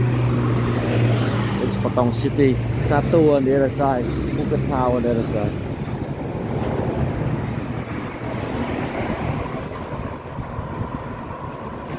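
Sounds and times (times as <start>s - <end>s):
road traffic rumble: 0.0s - 11.9s
wind on microphone: 2.6s - 11.9s.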